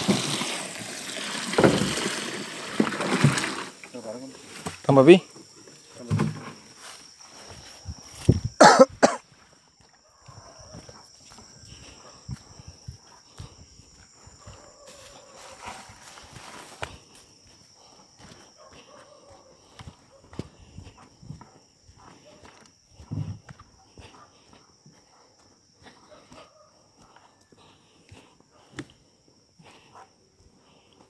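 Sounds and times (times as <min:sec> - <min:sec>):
footsteps through grass: 0:09.2 - 0:24.2.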